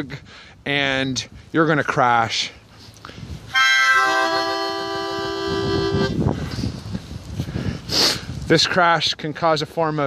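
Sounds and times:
harmonica chord: 3.5s - 6.1s.

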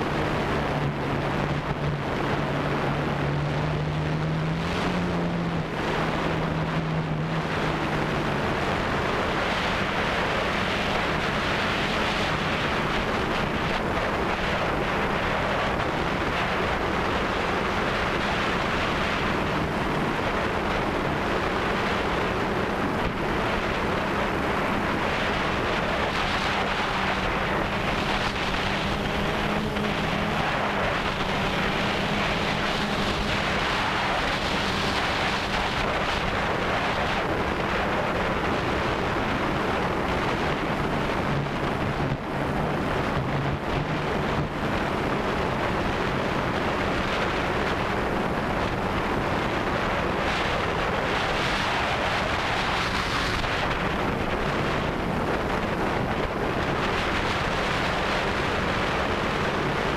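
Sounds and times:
drone motors humming: 0.0s - 37.6s
wind rushing over microphone: 0.0s - 59.9s.

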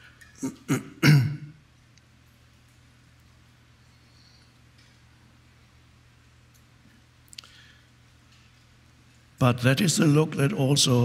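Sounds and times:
man clearing his throat: 0.4s - 1.6s.

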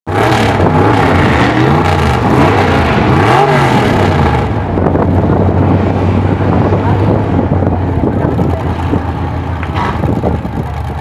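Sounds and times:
truck engine revving and idling: 0.1s - 11.0s.

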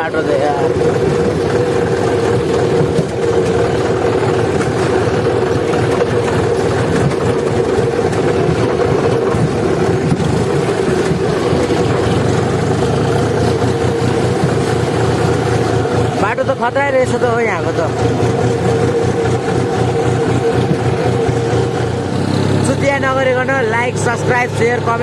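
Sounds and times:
tractor diesel engine running: 0.0s - 25.0s.

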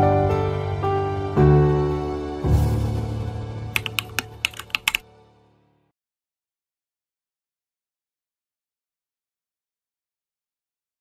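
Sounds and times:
keyboard key clicks: 3.8s - 5.0s.

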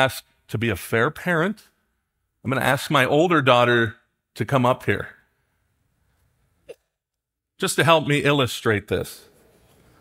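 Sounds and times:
man speaking: 0.0s - 1.7s, 2.4s - 5.2s, 7.6s - 9.3s.

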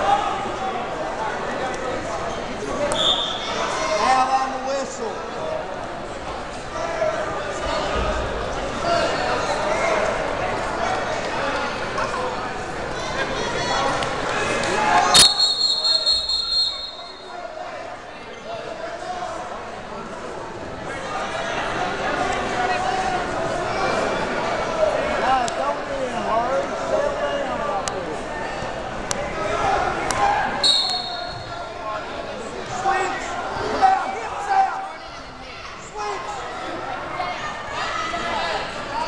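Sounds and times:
crowd chatter echoing: 0.0s - 39.0s
short high whistle blast: 15.2s - 17.2s.

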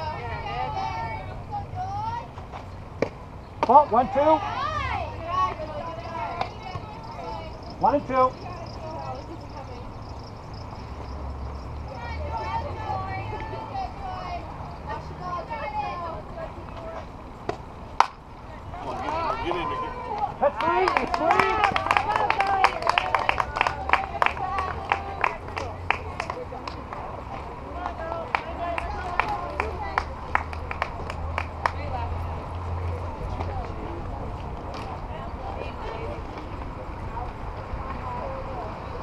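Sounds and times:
high voices shouting and cheering: 0.0s - 2.4s, 3.6s - 10.6s, 11.6s - 16.4s, 18.6s - 26.2s
hand clapping: 20.1s - 31.8s.

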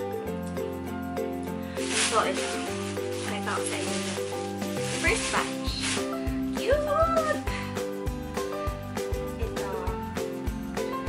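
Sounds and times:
background music with held notes: 0.0s - 11.0s
plastic packaging crinkling: 1.8s - 6.4s.

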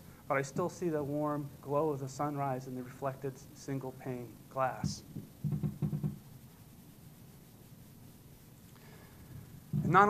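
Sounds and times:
low muffled thuds: 4.8s - 6.2s, 9.7s - 10.0s.

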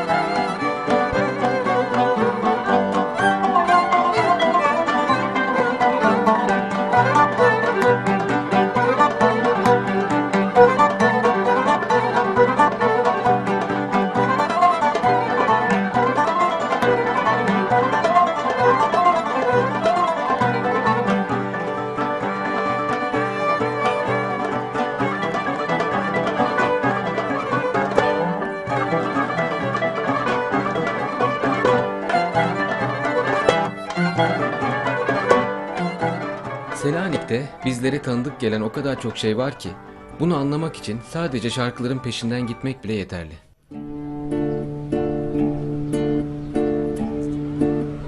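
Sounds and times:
kanun plucked in quick runs: 0.0s - 38.8s
accordion: 0.0s - 43.0s
plucked lutes: 0.0s - 48.0s
violin: 0.0s - 48.0s.

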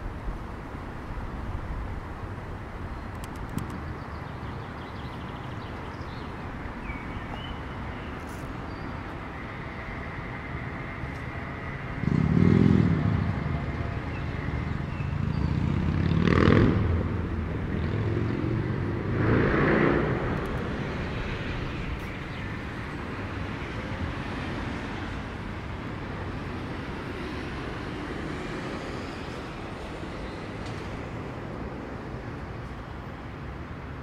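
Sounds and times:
steady traffic hum: 0.0s - 34.0s
vehicles passing close by: 0.0s - 34.0s.

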